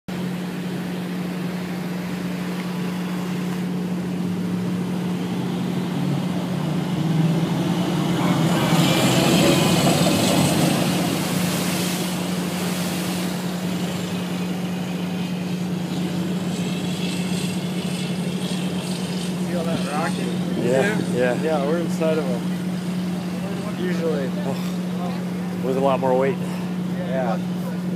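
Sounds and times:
churning water: 0.1s - 27.9s
vehicle engines droning: 0.1s - 27.9s.

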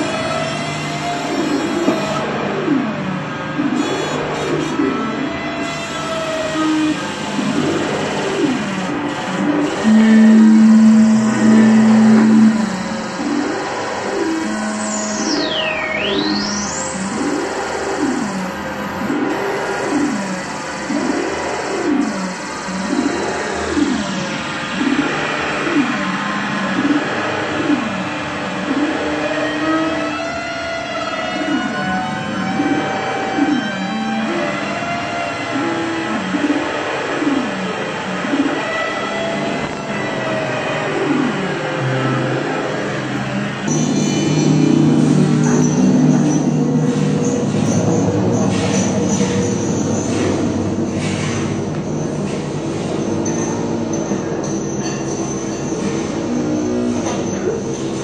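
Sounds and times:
synthesized pitch sweeps: 9.4s - 17.6s, 31.5s - 37.6s, 38.2s - 52.7s
loud steady low note: 9.8s - 14.0s
high whistle diving and climbing: 9.8s - 16.8s.

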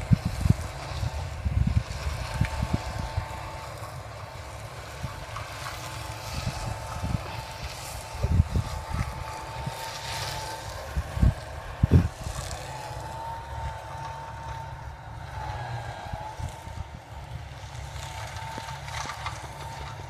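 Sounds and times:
distant tractor engine droning: 0.0s - 20.0s.

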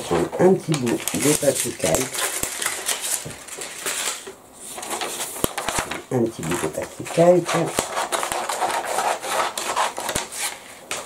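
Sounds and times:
scissors cutting paper: 0.0s - 4.2s, 4.9s - 11.0s.

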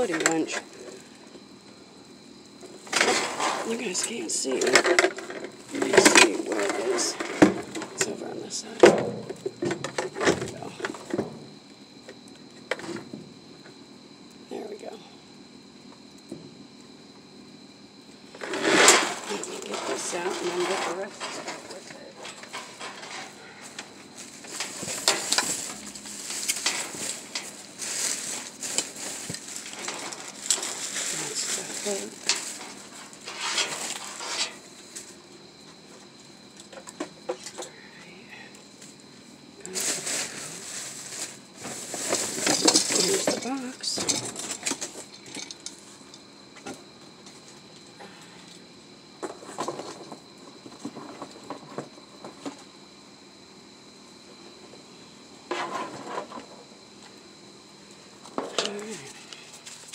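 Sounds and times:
plastic trash bags crinkling: 24.0s - 35.0s, 39.6s - 45.6s.

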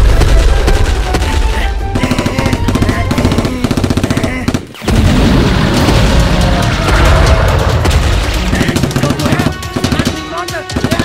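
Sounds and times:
automatic gunfire: 2.0s - 11.0s.

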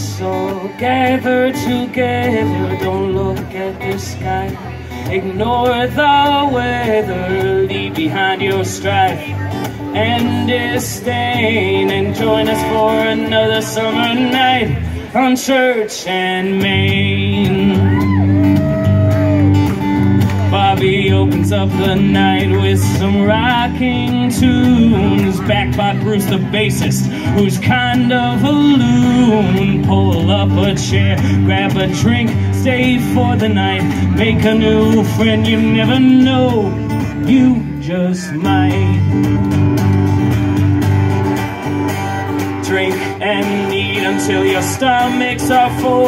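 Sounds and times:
bass line: 0.0s - 15.2s, 16.4s - 46.0s
man singing: 0.0s - 39.9s, 41.4s - 46.0s
strummed guitar: 0.0s - 46.0s.

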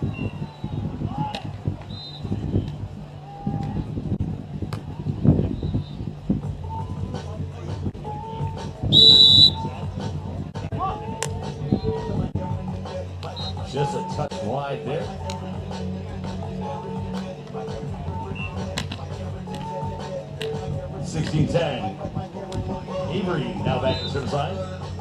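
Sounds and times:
referee's whistle blast: 1.9s - 2.7s, 8.9s - 9.7s, 23.7s - 24.4s.

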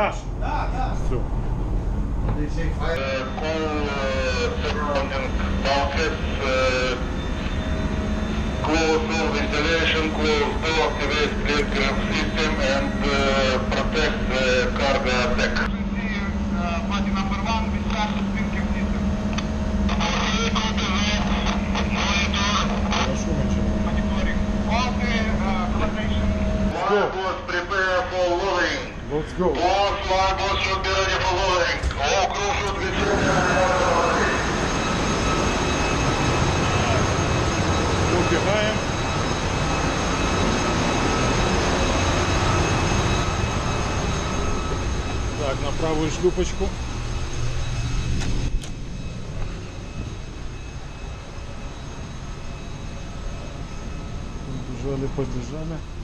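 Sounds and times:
engine room machinery roar: 0.0s - 56.0s
machinery hum: 0.0s - 56.0s
steady machine whines: 0.0s - 56.0s.

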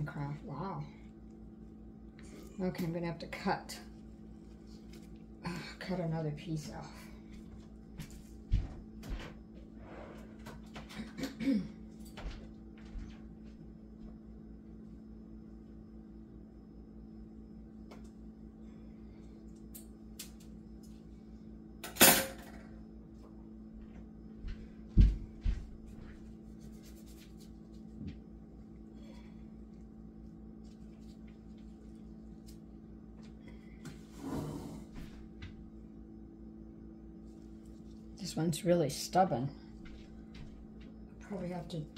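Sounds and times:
low electrical hum: 0.0s - 41.9s.

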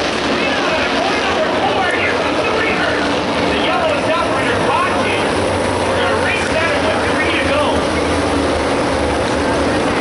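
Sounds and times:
race car engines humming: 0.0s - 10.0s
spectators chatter: 0.0s - 10.0s.

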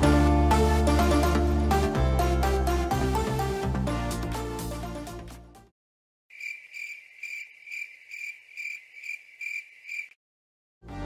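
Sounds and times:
cricket chirping: 6.3s - 10.2s.

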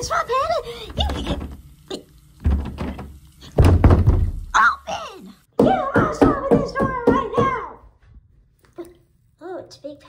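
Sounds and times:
banging on a door: 2.4s - 4.5s, 5.6s - 7.7s
voice sounds: 4.6s - 7.8s.

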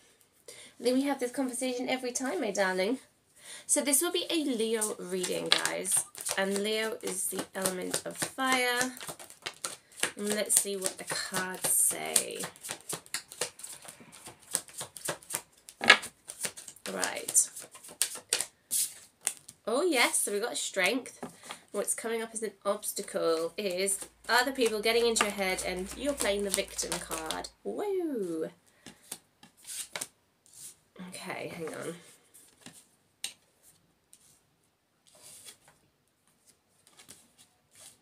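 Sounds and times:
cards being shuffled: 4.6s - 19.6s, 23.0s - 27.5s, 28.8s - 30.8s, 32.4s - 34.4s, 35.1s - 38.0s.

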